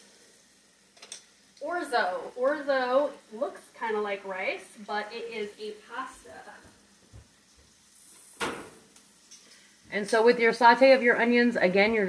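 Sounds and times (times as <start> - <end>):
onion sizzling in a pan: 0.0 - 12.0.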